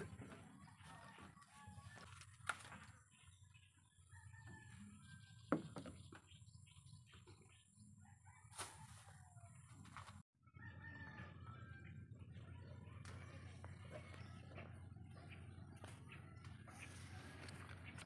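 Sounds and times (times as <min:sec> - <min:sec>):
faint rooster crowing: 0:00.0 - 0:02.6, 0:04.0 - 0:05.4, 0:08.0 - 0:18.0.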